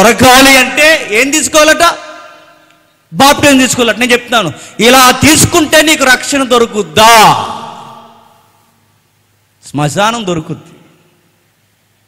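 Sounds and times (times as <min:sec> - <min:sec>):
man shouting through microphone: 0:07.0 - 0:07.8.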